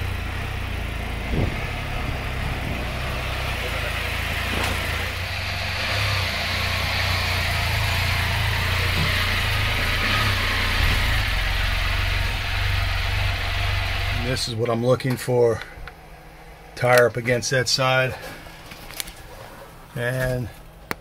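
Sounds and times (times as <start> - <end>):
engine running at low revs: 0.0 - 17.4.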